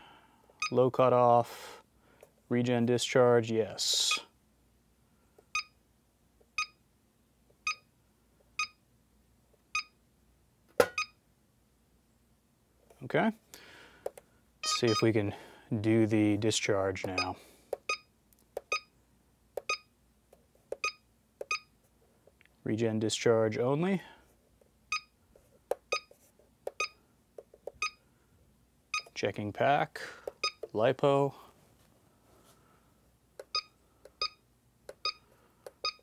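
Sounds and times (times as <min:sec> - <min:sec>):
short high beeps: 0:14.6 - 0:15.1, 0:17.1 - 0:18.1
short high electronic beeps: 0:14.6 - 0:15.1.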